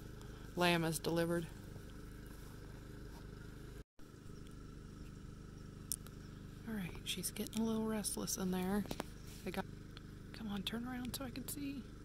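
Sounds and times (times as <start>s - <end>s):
low background hum and rumble: 0.0s - 12.0s.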